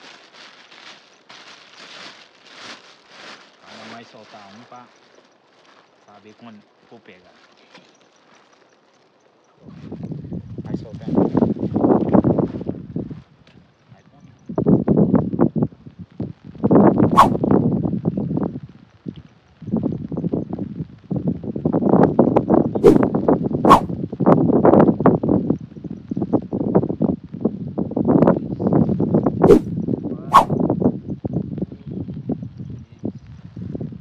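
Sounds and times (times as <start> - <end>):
fish flapping in a bag: 0.0 - 4.8
plastic bag rustling: 0.0 - 6.5
sharp slaps: 23.7 - 23.9.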